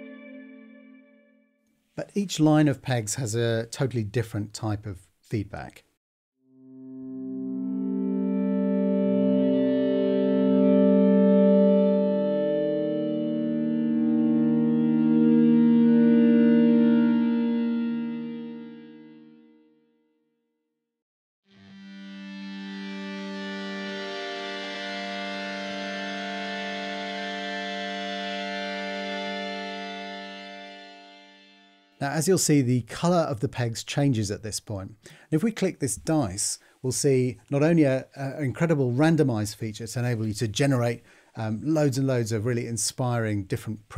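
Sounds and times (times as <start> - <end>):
feedback tone: 0.0 - 1.5
guitar feedback chord: 0.0 - 1.6, 6.5 - 20.0, 21.5 - 32.0.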